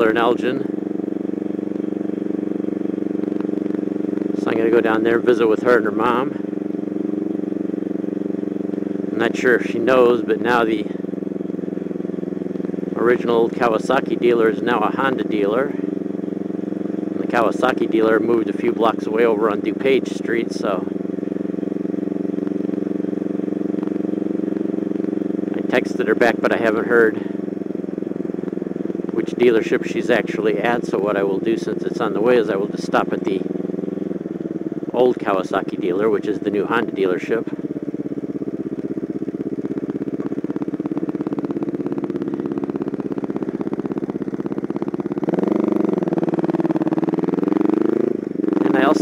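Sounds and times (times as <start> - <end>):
motorcycle engine cruising: 0.0 - 49.0.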